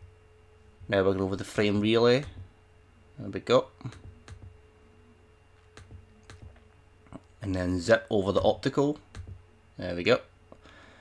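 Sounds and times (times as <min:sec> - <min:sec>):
faint steady hum: 0:00.0 - 0:11.0
computer mouse clicks: 0:03.8 - 0:04.5, 0:05.6 - 0:06.6, 0:09.1 - 0:09.4.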